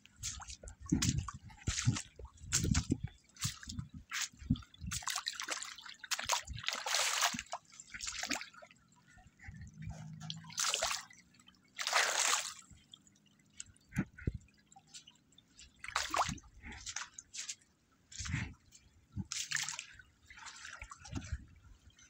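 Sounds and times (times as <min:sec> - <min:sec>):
footsteps splashing in shallow water: 0:00.0 - 0:22.0.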